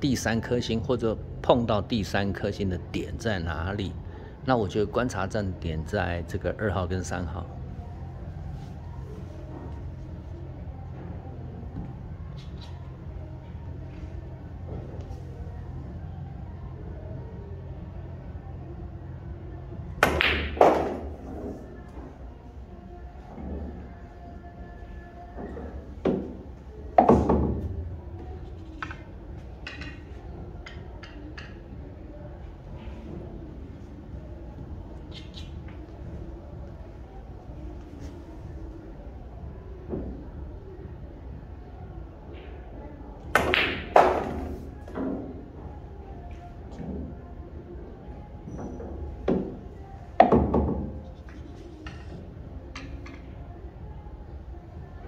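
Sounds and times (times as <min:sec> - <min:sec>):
billiard balls knocking: 0:20.0 - 0:21.6, 0:25.4 - 0:26.4, 0:27.0 - 0:27.8, 0:43.4 - 0:45.3, 0:50.2 - 0:52.1.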